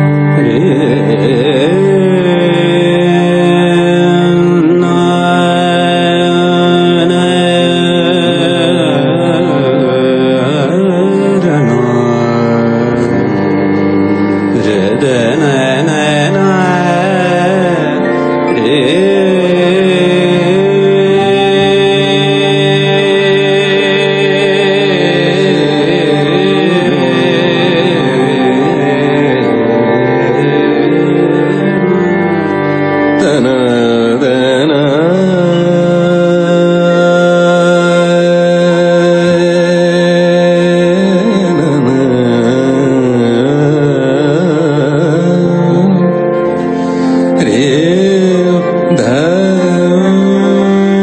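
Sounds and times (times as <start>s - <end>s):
harmonium chords: 0.0s - 51.0s
instrumental drone: 0.0s - 51.0s
man singing devotional song: 0.0s - 51.0s.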